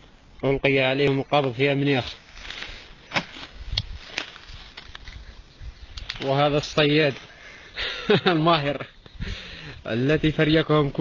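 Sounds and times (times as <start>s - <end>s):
footsteps in dry straw: 1.4s - 7.4s
rustling of handled birds: 1.9s - 7.7s.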